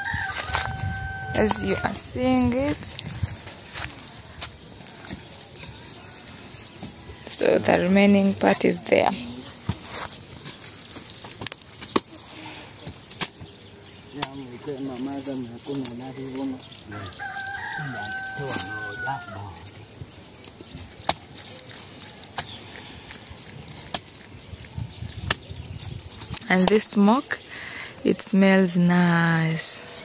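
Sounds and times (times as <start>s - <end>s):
rooster crowing: 0.0s - 2.0s, 16.1s - 19.6s
person talking: 1.4s - 3.0s.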